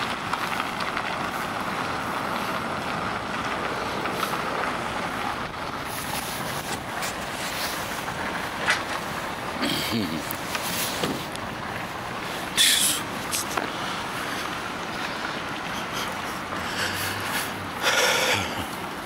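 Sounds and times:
car engine running: 0.0s - 19.0s
car pulling away: 0.0s - 19.0s.

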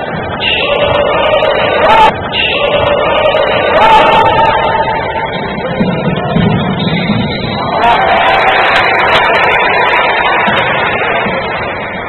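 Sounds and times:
basketball hall crowd noise: 0.0s - 12.0s
music: 0.0s - 12.0s.

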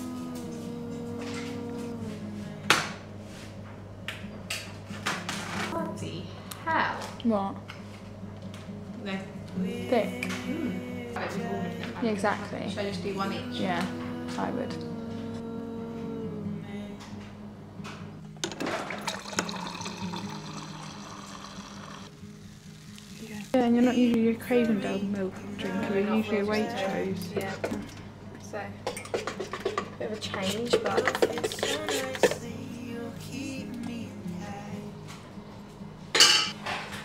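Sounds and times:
soft background music: 0.0s - 37.0s
kitchenware clatter: 18.4s - 19.6s, 28.8s - 32.5s, 36.2s - 37.0s
water pouring into a glass: 18.7s - 22.1s.

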